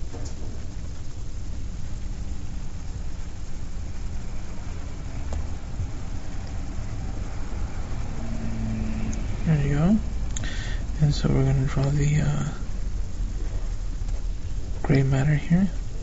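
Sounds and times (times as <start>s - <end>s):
even hiss: 0.0s - 16.0s
steady low rumble: 0.0s - 16.0s
faint clicks: 10.3s - 10.5s.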